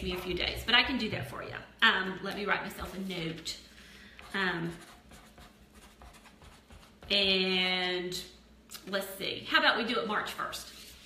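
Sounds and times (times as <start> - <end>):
pen scratching on paper: 4.2 - 7.0.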